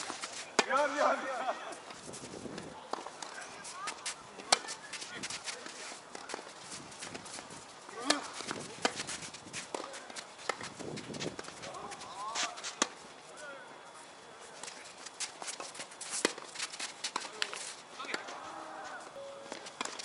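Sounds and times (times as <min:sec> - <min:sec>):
rackets striking ball: 0:00.0 - 0:01.1, 0:19.3 - 0:20.0
players' footsteps: 0:00.0 - 0:20.0
players shouting: 0:18.0 - 0:19.2.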